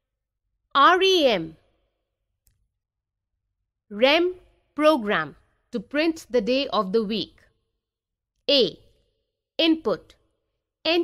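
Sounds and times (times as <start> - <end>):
woman narrating: 0.7 - 1.6, 3.9 - 7.5, 8.5 - 9.0, 9.6 - 10.2.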